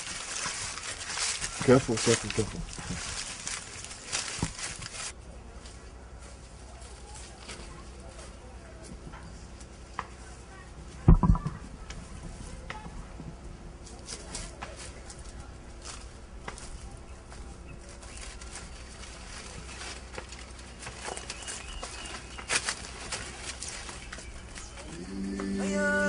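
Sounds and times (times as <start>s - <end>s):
twigs crackling and snapping: 0.0s - 5.2s, 13.9s - 25.7s
leaves and branches rustling: 0.0s - 26.0s
heavy thump: 11.1s - 11.7s.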